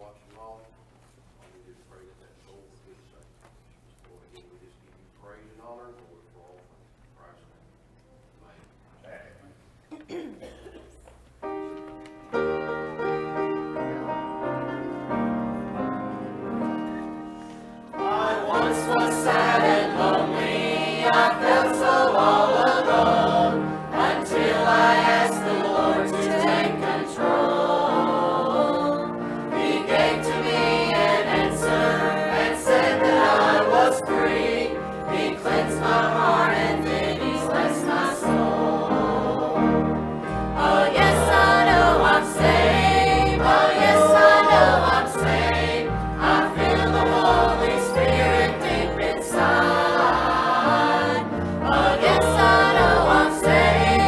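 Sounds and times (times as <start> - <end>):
piano accompaniment: 11.2 - 54.0
choir singing a hymn: 12.4 - 54.0.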